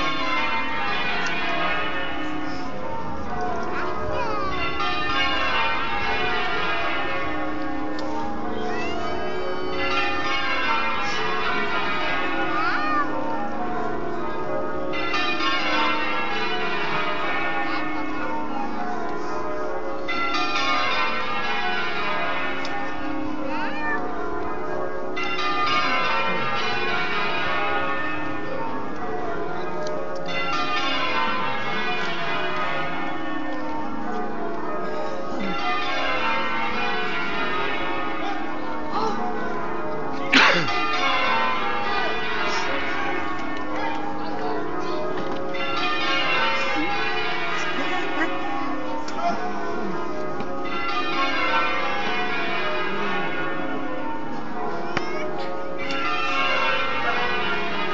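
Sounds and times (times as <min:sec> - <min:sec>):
church bells ringing: 0:00.0 - 0:57.9.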